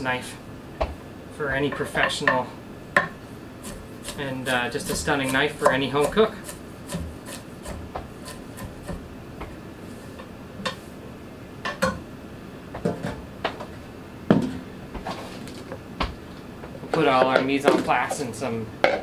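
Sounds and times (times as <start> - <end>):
knife scraping cut pieces: 3.6 - 9.0.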